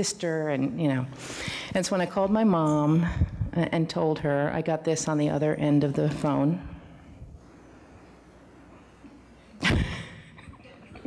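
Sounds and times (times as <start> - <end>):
woman laughing: 9.6 - 11.0.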